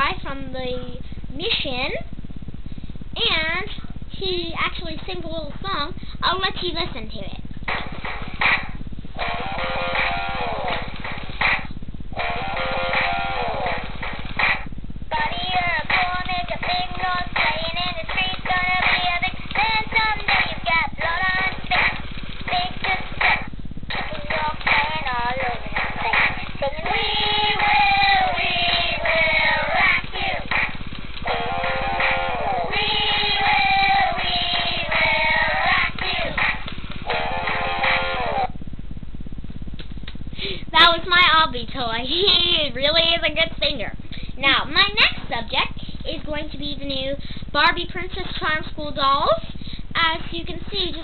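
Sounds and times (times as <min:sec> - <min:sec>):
toy voice singing over electronic music: 0:24.0 - 0:30.5, 0:31.3 - 0:36.4.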